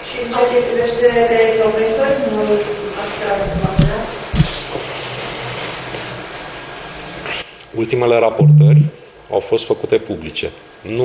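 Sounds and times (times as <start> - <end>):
steady hiss: 0.1 - 11.0.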